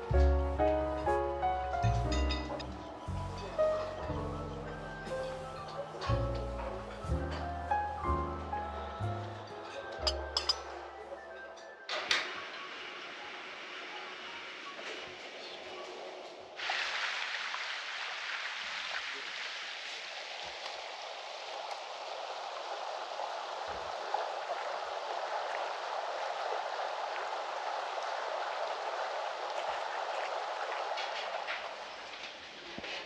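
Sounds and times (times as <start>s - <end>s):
flowing water rushing: 0.0s - 33.0s.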